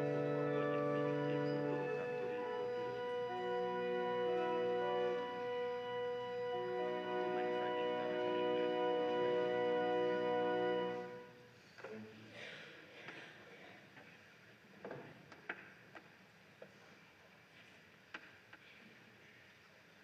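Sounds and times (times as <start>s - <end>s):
church organ chords: 0.0s - 11.4s.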